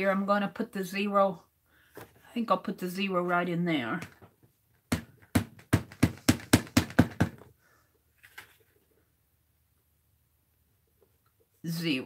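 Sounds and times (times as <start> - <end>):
rubber stamp tapping ink pad: 4.9 - 7.5.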